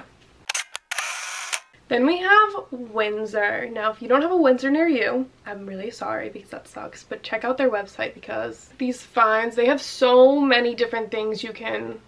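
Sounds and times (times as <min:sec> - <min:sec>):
camera shutter clicks: 0:00.5 - 0:01.7.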